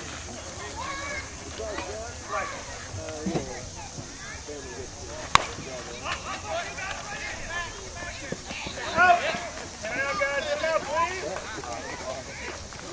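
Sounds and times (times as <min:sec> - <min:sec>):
players shouting: 0:00.0 - 0:12.9
bat hitting ball: 0:05.0 - 0:08.9.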